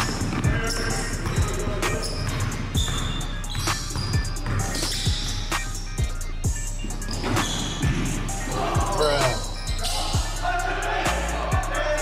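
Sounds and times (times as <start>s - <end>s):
players' voices: 0.0s - 5.0s, 7.3s - 12.0s
background music: 0.0s - 12.0s.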